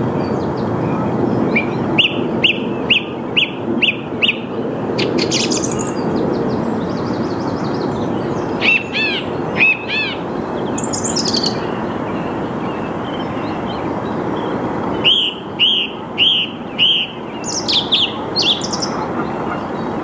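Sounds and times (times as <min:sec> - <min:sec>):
song thrush singing: 0:00.2 - 0:20.0.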